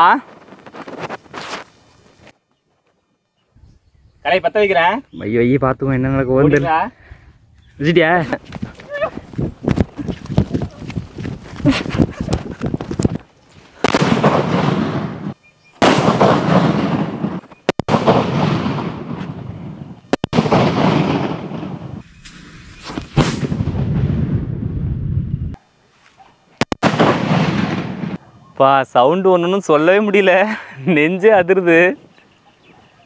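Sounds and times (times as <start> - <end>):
loud bangs with rumble: 13.8 - 19.3, 26.8 - 28.2
firecrackers cracking: 13.8 - 24.6, 26.6 - 28.2.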